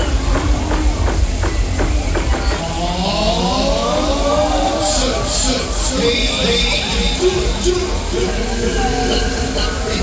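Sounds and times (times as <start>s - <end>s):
fog machine hissing: 0.0s - 10.0s.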